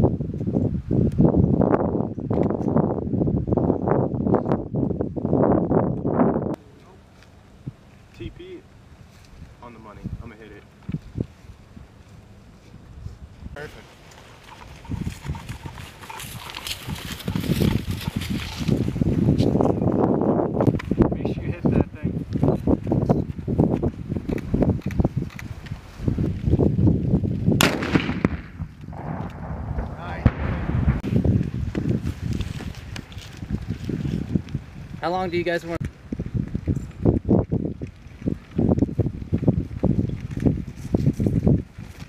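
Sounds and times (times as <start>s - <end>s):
vegetation rustling: 6.6s - 21.2s, 31.1s - 35.5s
footsteps through dry grass: 8.9s - 21.2s, 22.1s - 27.5s, 30.4s - 35.0s, 35.8s - 42.0s
sharp crack: 27.6s - 31.9s.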